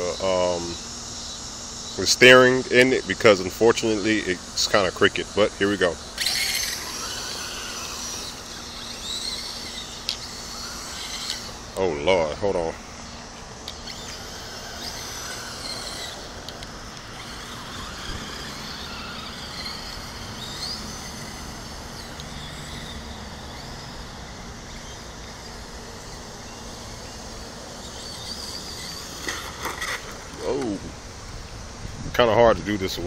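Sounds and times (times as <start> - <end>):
electric motor whining: 0.0 - 31.9
steady outdoor hiss: 0.0 - 33.0.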